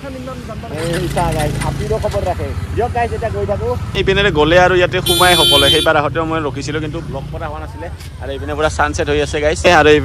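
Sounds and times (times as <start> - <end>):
motorcycle engine running: 0.0 - 10.0
voices talking: 0.0 - 10.0.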